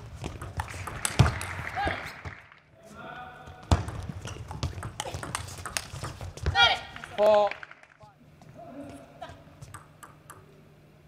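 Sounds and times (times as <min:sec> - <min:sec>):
footsteps on court floor: 0:03.4 - 0:07.2
ping pong ball clicking: 0:03.9 - 0:06.2, 0:09.7 - 0:10.5.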